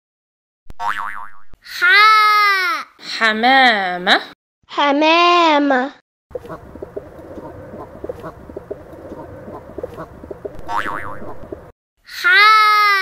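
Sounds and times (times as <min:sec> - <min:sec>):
low background noise: 0:06.3 - 0:10.6
pigeons cooing: 0:06.3 - 0:11.7.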